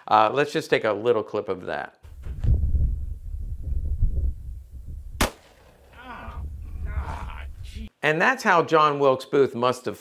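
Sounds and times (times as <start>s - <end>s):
wind rumble on microphone: 2.1s - 5.2s, 6.2s - 7.9s
pistol gunshot: 5.2s - 5.8s.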